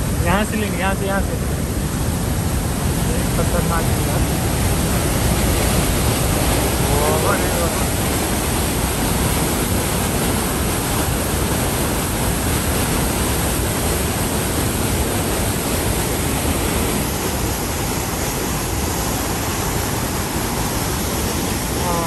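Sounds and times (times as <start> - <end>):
waterfall rushing: 0.0 - 22.0.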